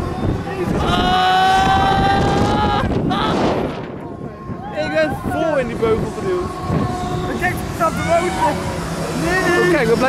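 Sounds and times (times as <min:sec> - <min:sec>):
person screaming: 0:00.8 - 0:03.6.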